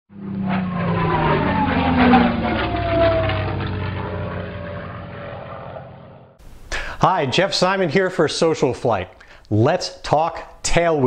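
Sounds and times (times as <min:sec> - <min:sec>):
propeller aircraft flying past: 0:00.1 - 0:06.4.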